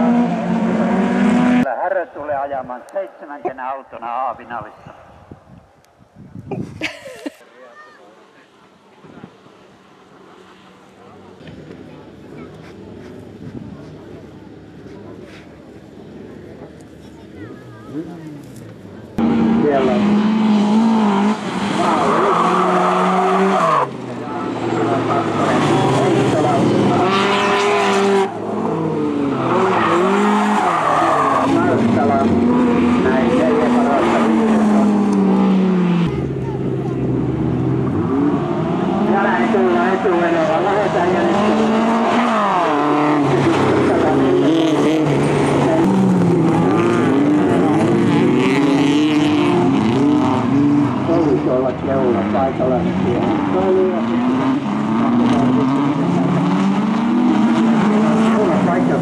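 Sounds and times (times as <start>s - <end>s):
car engines revving: 0.0s - 5.4s, 7.1s - 59.0s.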